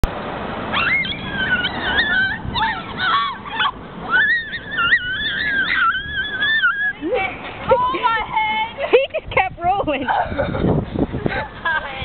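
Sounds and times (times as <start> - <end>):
people squealing and shrieking: 0.7 - 7.2.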